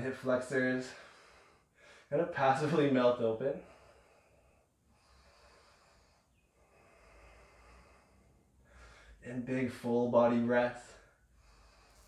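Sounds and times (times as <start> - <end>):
faint slow breathing: 0.8 - 2.7, 3.5 - 9.3, 10.9 - 12.0.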